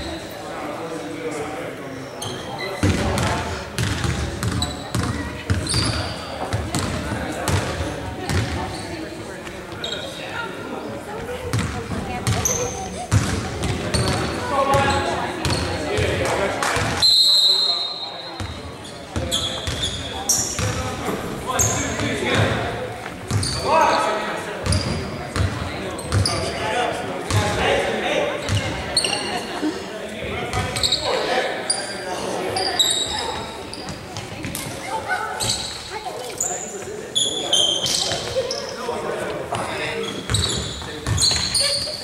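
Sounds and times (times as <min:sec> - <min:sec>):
indistinct chatter: 0:00.0 - 0:42.0
short high squeaks: 0:40.0 - 0:42.0.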